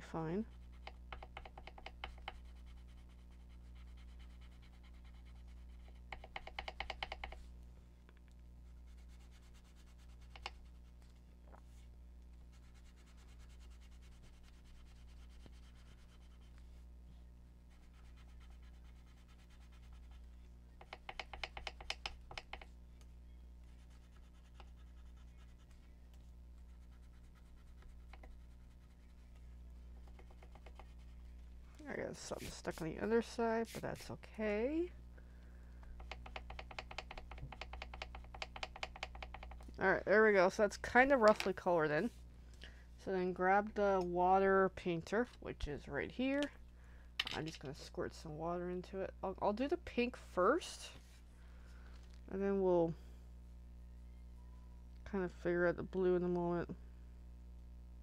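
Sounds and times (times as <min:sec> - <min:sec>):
faint low hum: 0:00.0 - 0:58.0
pencil scribbling on paper: 0:00.4 - 0:06.9, 0:08.7 - 0:10.9, 0:12.5 - 0:16.6, 0:17.7 - 0:21.9, 0:23.7 - 0:25.8, 0:26.6 - 0:29.3, 0:30.2 - 0:31.2.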